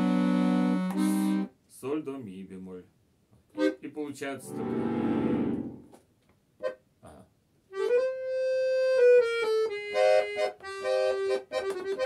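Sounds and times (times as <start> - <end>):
button accordion chord: 0.0 - 1.5, 3.6 - 3.8, 4.4 - 5.9, 7.7 - 12.0.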